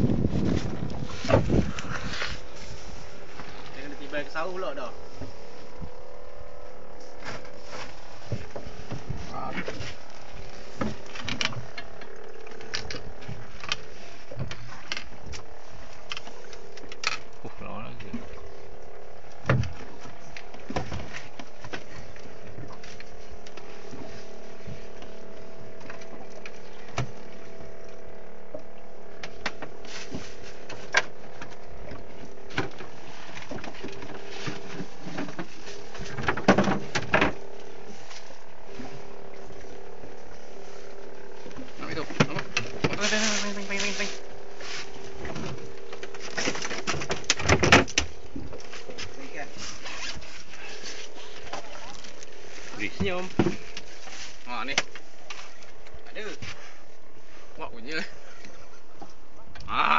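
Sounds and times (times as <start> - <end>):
boat engine humming: 0.0 - 59.9
voices: 41.4 - 44.4.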